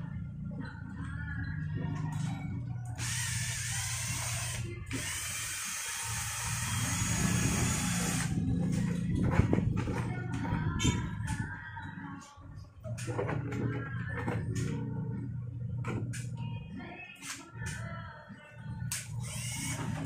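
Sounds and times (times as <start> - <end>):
cordless drill motor whining: 2.9 - 8.4, 19.2 - 20.0.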